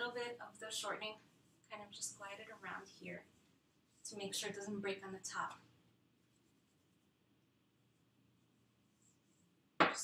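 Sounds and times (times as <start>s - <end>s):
woman speaking: 0.0s - 3.4s, 4.0s - 5.7s
faint hand rubbing: 6.1s - 9.7s.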